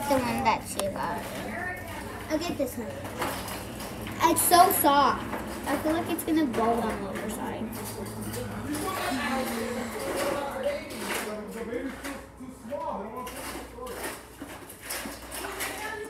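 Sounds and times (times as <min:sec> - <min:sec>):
children's muffled voices: 0:00.0 - 0:10.9, 0:15.1 - 0:16.0.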